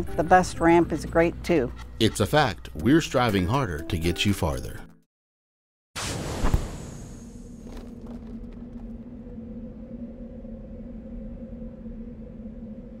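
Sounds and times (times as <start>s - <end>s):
low synthesized drone: 8.8s - 13.0s.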